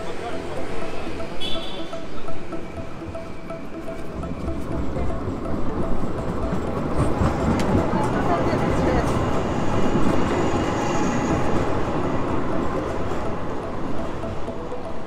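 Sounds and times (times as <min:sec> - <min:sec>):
tram passing on tracks: 0:00.0 - 0:15.0
voices of passers-by: 0:00.0 - 0:15.0.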